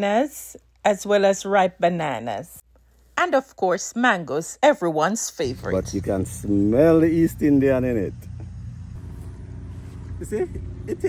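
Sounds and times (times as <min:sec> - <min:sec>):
steady low hum: 0:05.5 - 0:11.0.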